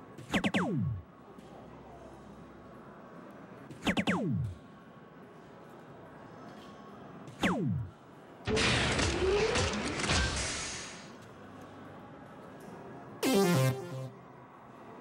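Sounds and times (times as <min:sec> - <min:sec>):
falling electronic sweep: 0:13.2 - 0:14.2
noisy fanfare with rising tone: 0:13.2 - 0:14.2.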